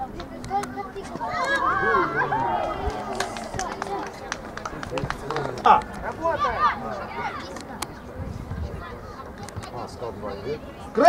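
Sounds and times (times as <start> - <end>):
children shouting: 1.0 - 4.8, 5.6 - 7.5.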